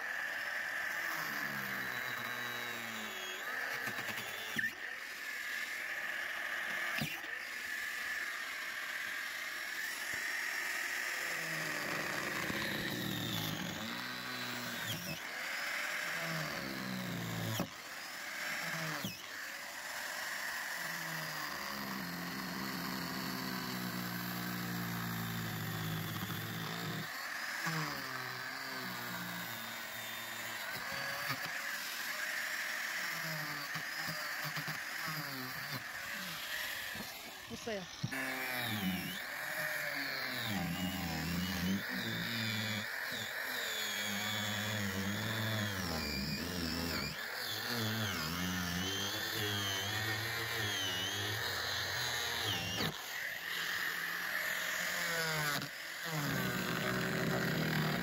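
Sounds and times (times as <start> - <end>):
angle grinder cutting plastic: 0.0 - 58.0.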